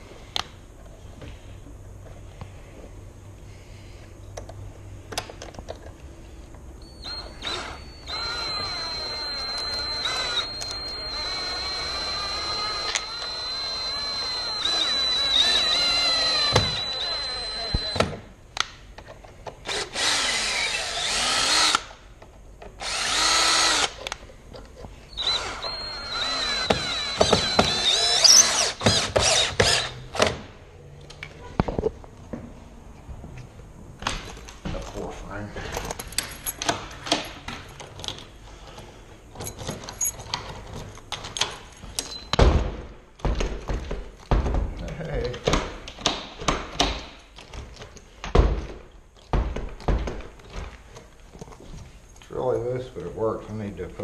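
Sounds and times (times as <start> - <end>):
cordless drill whining: 6.8 - 18.2, 19.6 - 21.9, 22.8 - 24.0, 25.1 - 30.3.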